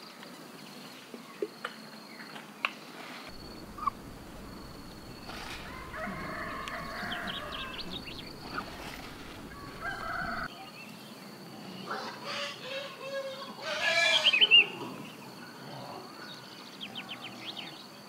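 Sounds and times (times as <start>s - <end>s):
chickens calling: 3.3s - 10.5s
rooster crowing: 3.3s - 10.5s
small birds chirping: 3.3s - 10.5s.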